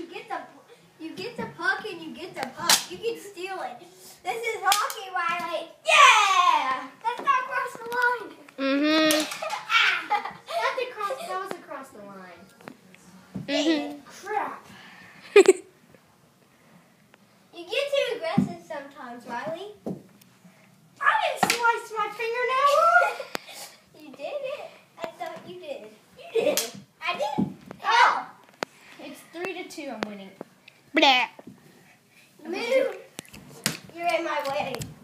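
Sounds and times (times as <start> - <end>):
children shouting: 5.8 - 6.9
child exclaiming: 5.8 - 7.8, 22.4 - 23.2, 27.1 - 28.4.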